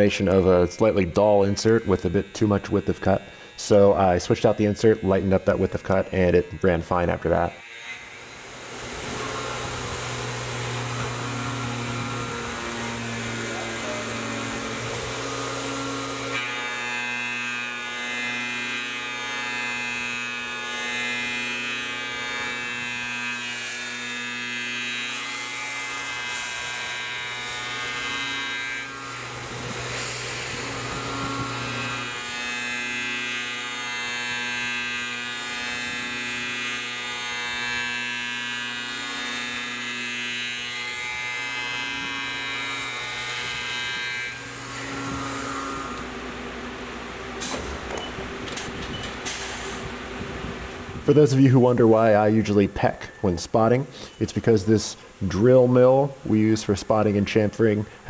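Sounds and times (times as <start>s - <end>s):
milling machine whine: 0.0s - 51.4s.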